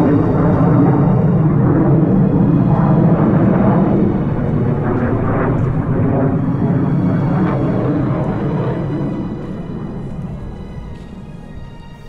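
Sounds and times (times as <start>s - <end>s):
jet engines rumbling overhead: 0.0s - 12.0s.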